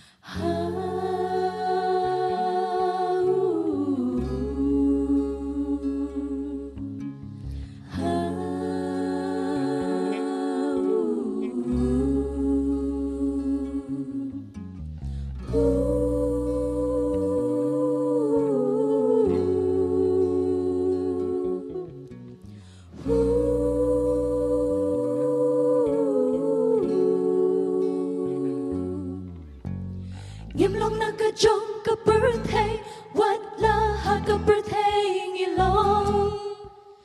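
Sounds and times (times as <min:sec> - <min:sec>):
female vocal group singing in harmony: 0:00.0 - 0:37.0.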